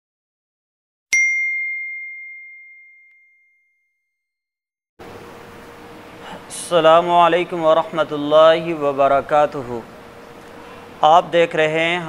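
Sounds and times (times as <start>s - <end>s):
bell ding: 1.2s - 4.0s.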